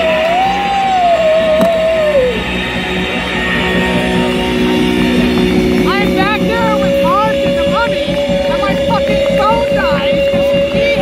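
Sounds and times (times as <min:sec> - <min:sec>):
rock band playing loud: 0:00.0 - 0:11.0
electric guitar held note: 0:03.4 - 0:10.8.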